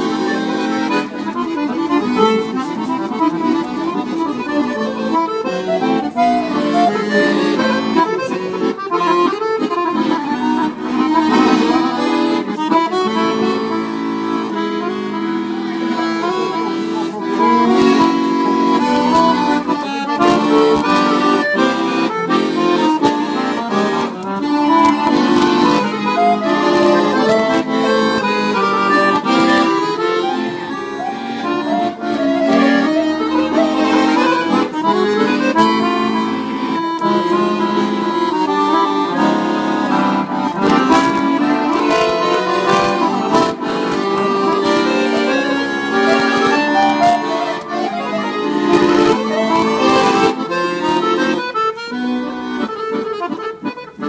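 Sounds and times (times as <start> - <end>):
accordion playing folk melody: 0.0 - 54.0.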